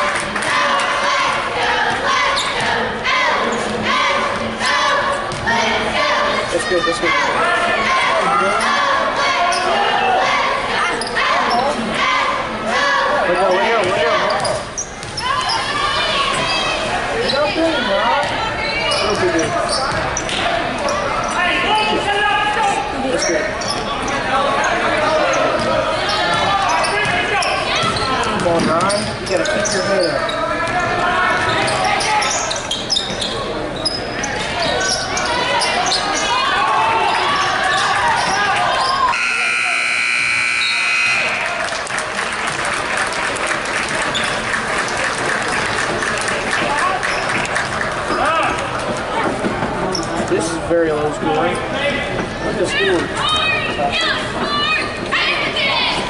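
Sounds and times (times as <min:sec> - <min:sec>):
voices calling and shouting: 0:00.0 - 0:42.0, 0:45.9 - 0:56.0
scoreboard buzzer: 0:39.1 - 0:41.6.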